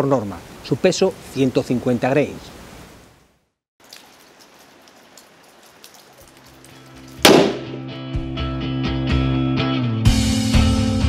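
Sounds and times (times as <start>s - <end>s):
light rain patter: 0.0s - 7.8s
rifle shot: 7.2s - 7.8s
rock music with guitar: 7.6s - 11.0s.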